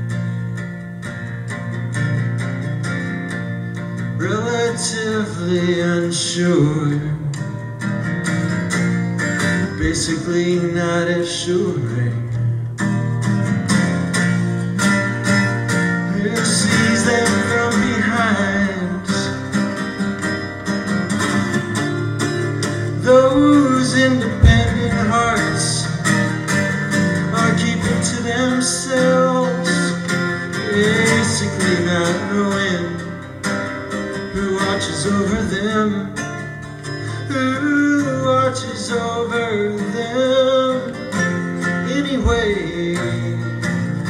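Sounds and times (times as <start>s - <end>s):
plucked acoustic guitar: 0.0s - 44.0s
low thump: 24.4s - 25.2s.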